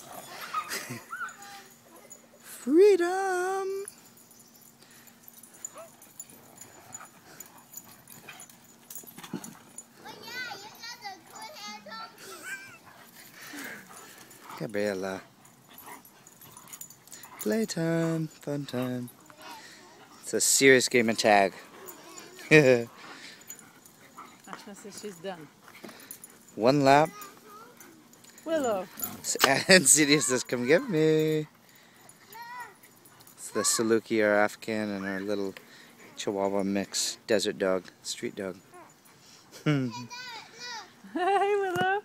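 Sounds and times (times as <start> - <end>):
dog whining and yipping: 0.0 - 1.8
dogs playing: 0.0 - 2.7, 3.5 - 41.1
woman speaking: 24.5 - 25.5, 28.5 - 29.0.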